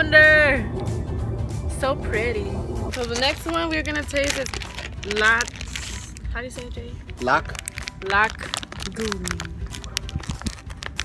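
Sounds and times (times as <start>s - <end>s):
plastic bag crinkling: 2.9s - 6.4s, 7.0s - 11.0s.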